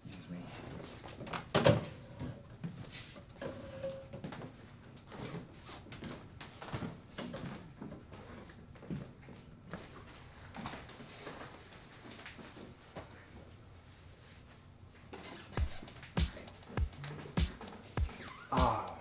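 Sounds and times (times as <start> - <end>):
footsteps on wooden floor: 15.6 - 19.0.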